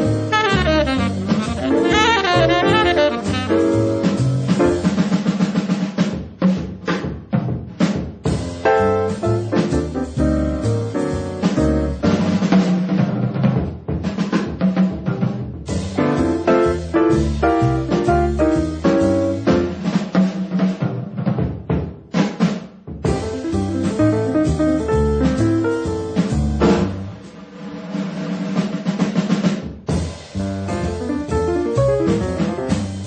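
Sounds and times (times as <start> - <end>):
jazz band playing: 0.0 - 5.6, 8.3 - 12.9, 15.6 - 20.3, 23.0 - 27.3, 29.9 - 33.0
snare drum roll and hits: 0.0 - 33.0
tenor saxophone phrases: 0.3 - 3.6.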